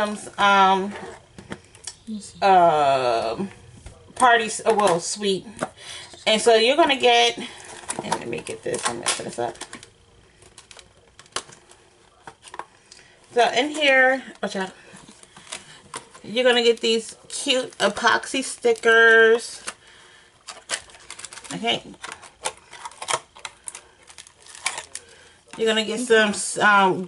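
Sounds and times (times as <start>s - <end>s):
cellophane packets crinkling: 7.0s - 26.2s.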